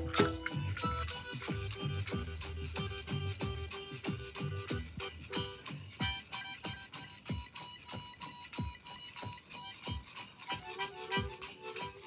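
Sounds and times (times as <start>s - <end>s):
hand rattle shaken in a beat: 0.0s - 12.0s
harmonica playing long notes: 0.0s - 12.0s.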